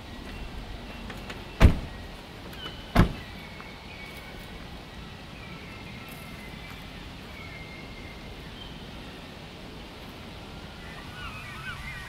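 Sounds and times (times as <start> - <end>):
car doors slamming: 1.3 - 2.0, 2.6 - 3.3.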